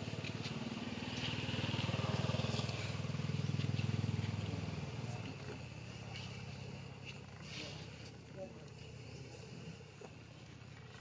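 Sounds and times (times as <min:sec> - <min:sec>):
vehicle engine passing by: 0:00.0 - 0:07.9.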